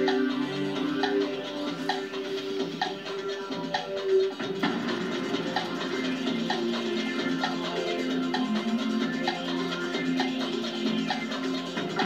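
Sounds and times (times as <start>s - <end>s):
countdown music with ticking: 0.0s - 12.0s.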